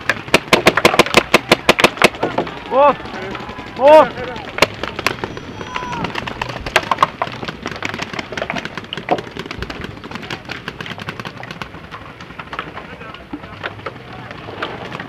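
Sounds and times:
paintball markers firing: 0.0 - 13.8
paintballs hitting bunkers: 0.0 - 15.0.

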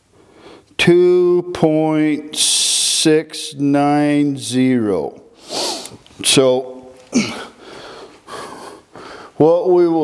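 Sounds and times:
breaths: 0.1 - 0.8, 5.4 - 6.0, 7.0 - 9.4
man grunting: 7.1 - 7.6.

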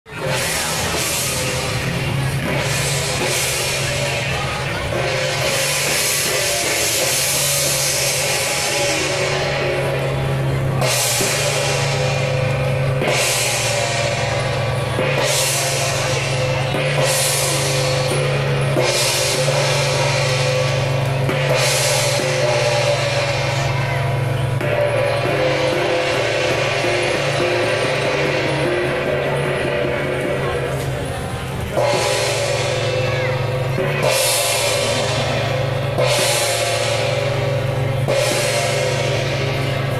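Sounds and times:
brass cymbal crashes: 0.1 - 39.9
drums playing: 0.1 - 39.9.

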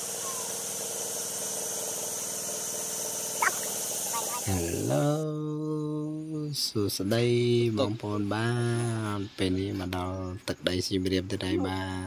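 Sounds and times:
engine humming steadily: 0.0 - 6.4.

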